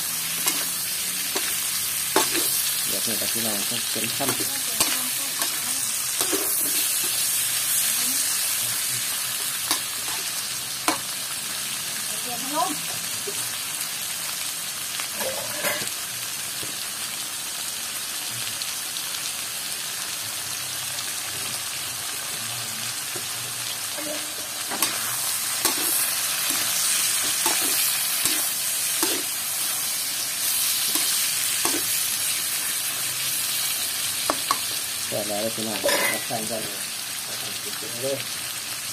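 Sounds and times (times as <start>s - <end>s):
meat sizzling in a wok: 0.0s - 38.9s
metal spatula scraping a pan: 15.2s - 15.9s, 35.8s - 36.3s.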